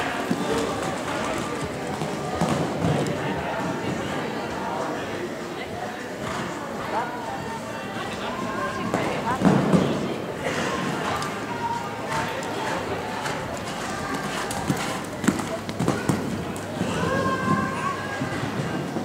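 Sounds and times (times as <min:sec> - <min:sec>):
people's voices: 0:00.0 - 0:19.0
horse hoofbeats on sand: 0:13.2 - 0:19.0.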